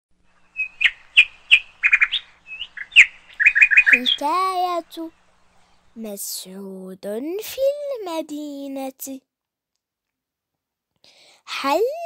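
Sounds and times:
bird chirping: 0.2s - 6.0s.

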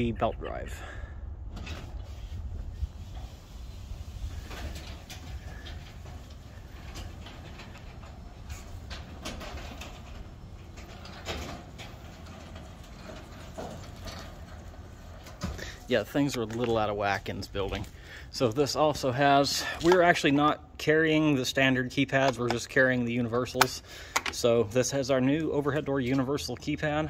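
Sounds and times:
garage door opener humming: 3.1s - 15.8s.

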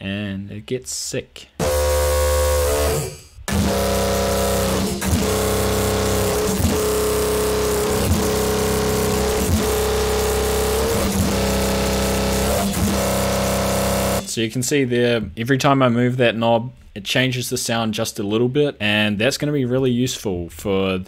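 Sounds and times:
aggressive screamer bass synth: 1.6s - 14.3s.

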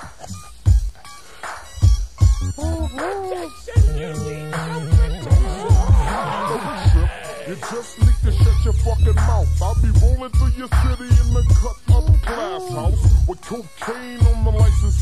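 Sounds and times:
deep bass line: 1.8s - 3.0s, 3.8s - 7.2s, 8.0s - 13.4s, 14.2s - 15.0s
rapping over slowed hip hop: 1.8s - 15.0s.

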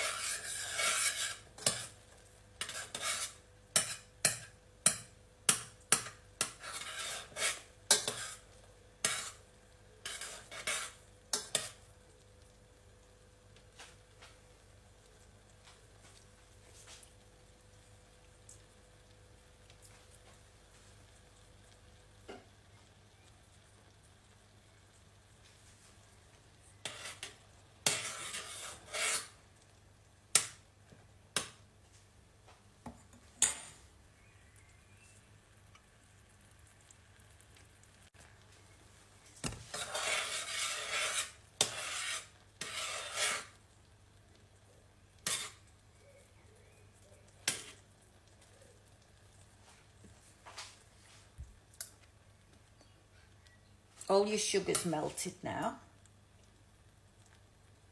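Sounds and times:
metal spoon stirring in saucepan: 0.0s - 13.1s, 17.8s - 29.7s, 32.8s - 56.5s, 57.2s - 57.8s
spoon tapping pan: 3.7s - 6.6s, 30.3s - 30.6s, 31.3s - 31.7s.

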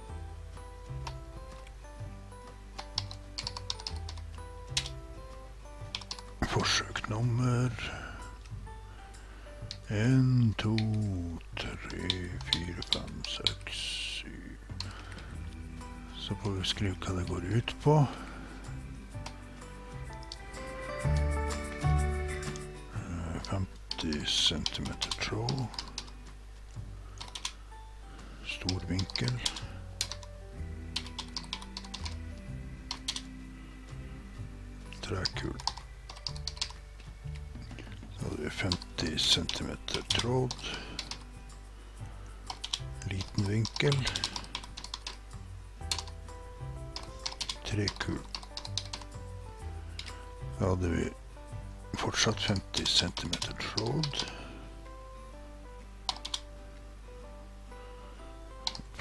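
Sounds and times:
background music low notes: 0.0s - 59.0s
keyboard typing: 2.4s - 5.0s, 5.8s - 6.4s, 11.8s - 13.6s, 19.1s - 19.4s, 20.0s - 26.3s, 27.2s - 27.6s, 28.6s - 33.3s, 35.0s - 37.5s, 38.6s - 41.4s, 42.4s - 46.3s, 46.9s - 49.3s, 49.9s - 50.2s, 52.5s - 54.4s, 56.0s - 56.5s, 58.6s - 59.0s.

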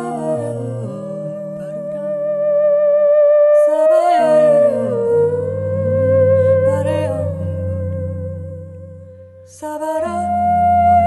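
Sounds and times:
theremin sliding tone: 0.0s - 11.0s.

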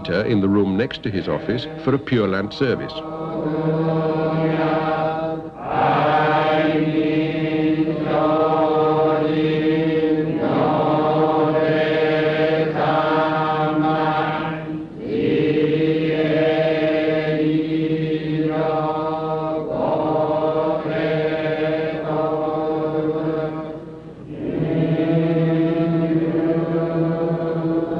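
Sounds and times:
congregation chanting in unison: 0.0s - 27.9s.

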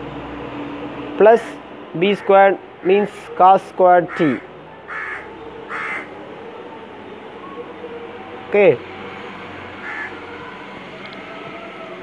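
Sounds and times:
crow cawing: 4.0s - 6.1s, 9.8s - 10.2s.

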